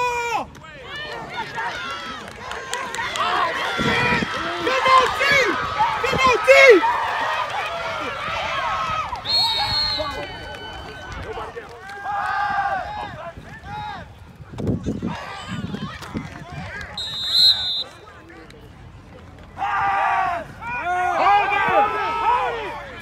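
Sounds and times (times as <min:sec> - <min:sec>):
people shouting and cheering: 0:00.0 - 0:18.4, 0:19.4 - 0:23.0.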